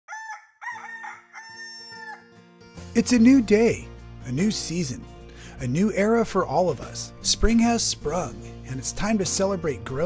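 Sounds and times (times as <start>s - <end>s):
rooster crowing: 0.1s - 2.3s.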